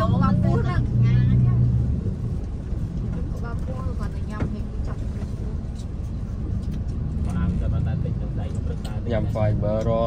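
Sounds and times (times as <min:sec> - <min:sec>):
low rumble of street market: 0:00.0 - 0:10.0.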